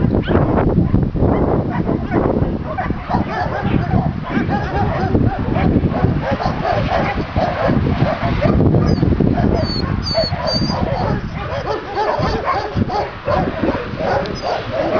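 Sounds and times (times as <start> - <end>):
dogs barking and yelping: 0.0 - 14.9.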